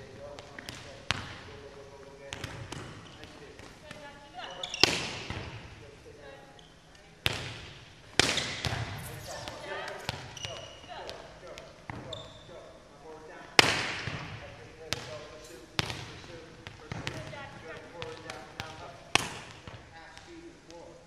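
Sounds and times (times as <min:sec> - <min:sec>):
balls bouncing on hardwood floor: 0:00.2 - 0:05.8, 0:07.2 - 0:12.2, 0:15.8 - 0:20.3.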